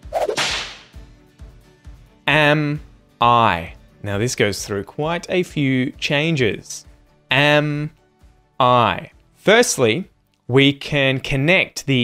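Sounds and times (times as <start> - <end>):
whoosh swish: 0.0 - 1.0.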